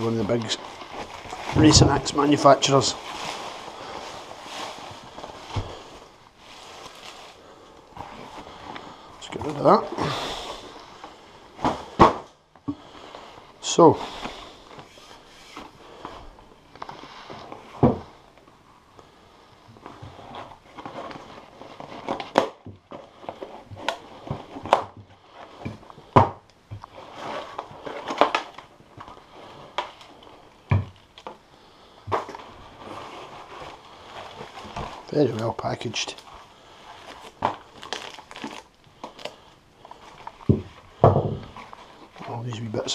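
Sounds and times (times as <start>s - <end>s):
cardboard and paper rustling: 0.0s - 12.3s, 19.7s - 31.4s, 32.1s - 42.9s.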